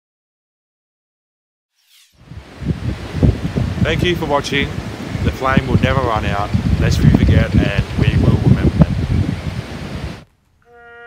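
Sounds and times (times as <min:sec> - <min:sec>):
wind buffeting microphone: 0:02.2 - 0:10.3
bugle held note: 0:10.6 - 0:11.0.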